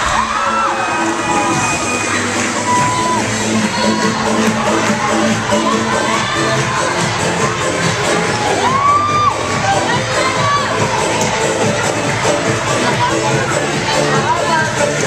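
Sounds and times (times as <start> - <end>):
children cheering and shouting: 0.0 - 14.4.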